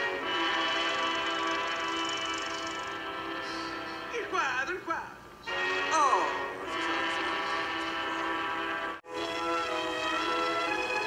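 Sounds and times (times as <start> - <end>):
film trailer music held chord: 5.5 - 11.0.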